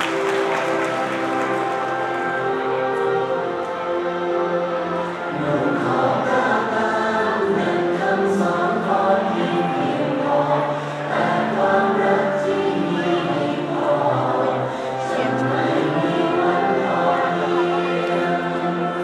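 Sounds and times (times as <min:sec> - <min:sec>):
choir singing slow song: 0:00.0 - 0:19.0
musical accompaniment: 0:00.0 - 0:19.0.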